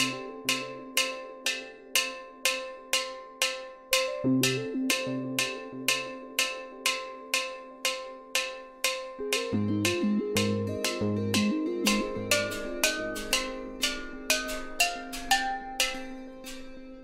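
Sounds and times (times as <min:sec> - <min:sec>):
low steelpan notes: 0:00.0 - 0:17.0.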